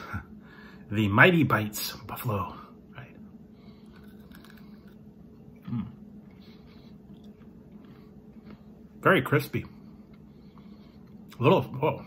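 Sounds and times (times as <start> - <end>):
chewing crunches: 3.7 - 8.7
person humming mm: 5.6 - 6.0.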